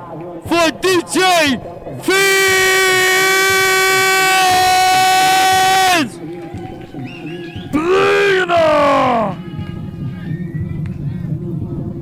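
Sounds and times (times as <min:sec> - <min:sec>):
long held shout: 0:00.5 - 0:06.2, 0:07.7 - 0:09.6.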